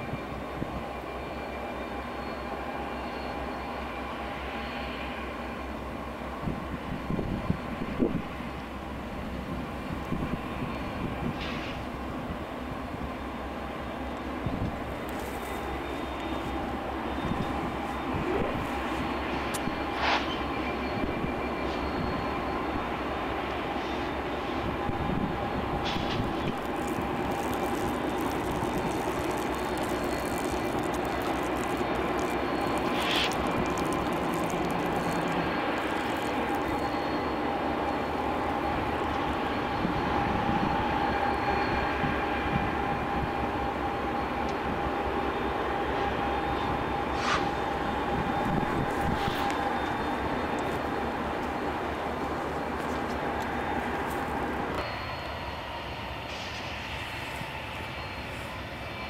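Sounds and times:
thin steady whine: 0.0 - 59.0
train wheels rumbling on rail: 0.0 - 59.0
high squeaks: 26.1 - 37.4.

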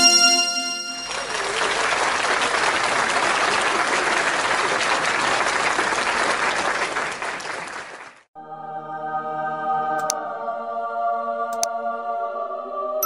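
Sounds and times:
crowd applause: 0.8 - 8.3.

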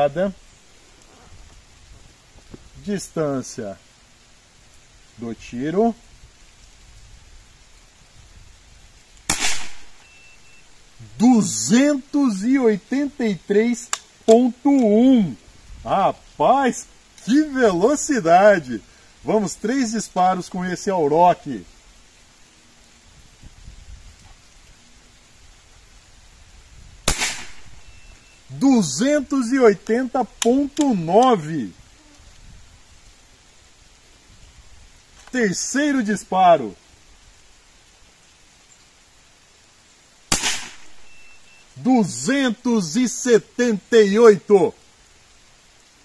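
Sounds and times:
air rifle shot: 9.3 - 10.0, 27.1 - 27.7, 40.3 - 41.0.

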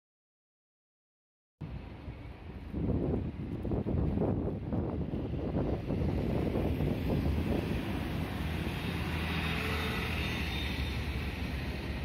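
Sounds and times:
bus engine rumble: 1.6 - 12.0
road noise: 1.6 - 12.0.

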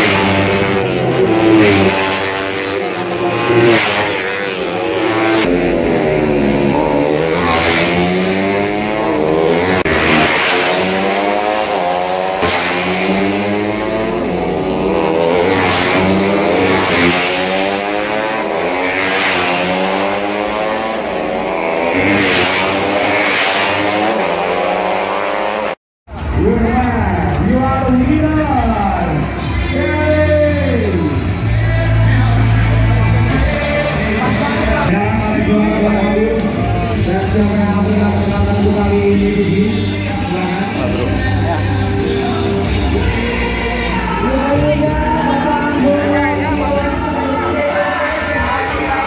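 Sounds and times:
voices: 0.0 - 23.2, 26.2 - 49.0
motorcycle engines revving past: 0.0 - 25.8.

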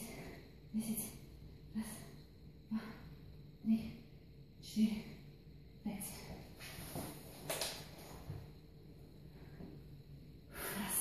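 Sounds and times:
woman breathing hard: 9.3 - 11.0.

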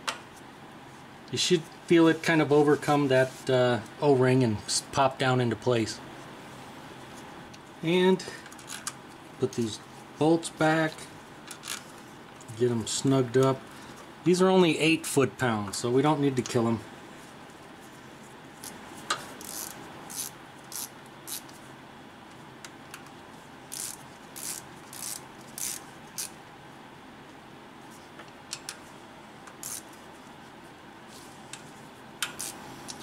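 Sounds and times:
hand ratchet clicking: 19.4 - 21.5, 23.7 - 26.3, 29.5 - 29.9.

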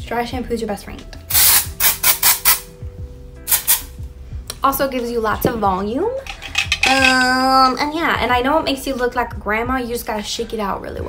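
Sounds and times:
aerosol spray hissing: 1.3 - 2.6, 3.5 - 3.9.

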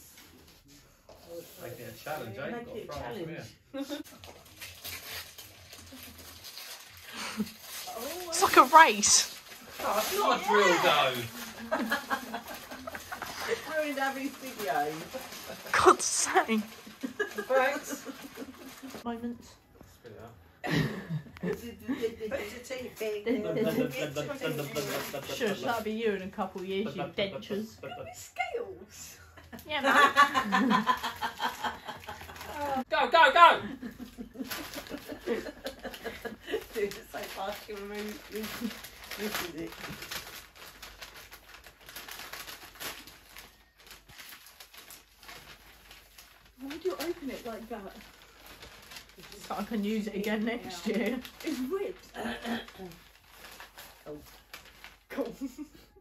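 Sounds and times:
wrapping paper rustling and crinkling: 0.0 - 2.5, 3.9 - 20.2, 22.4 - 27.0, 29.9 - 32.9, 33.7 - 55.7
people talking: 8.0 - 9.3, 15.8 - 16.7
people laughing: 11.6 - 13.6, 29.9 - 32.8, 33.7 - 36.6.

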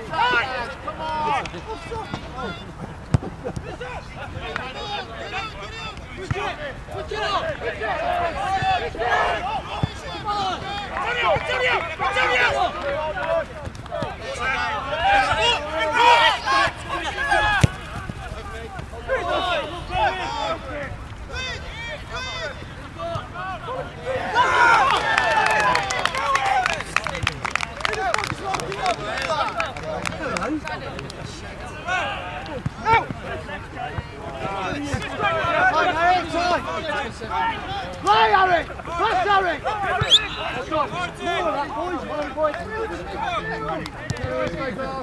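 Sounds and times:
footballers shouting: 0.0 - 45.0.

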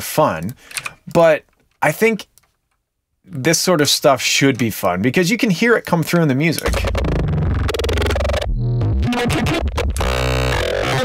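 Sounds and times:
distorted electronic bass: 6.6 - 11.0.

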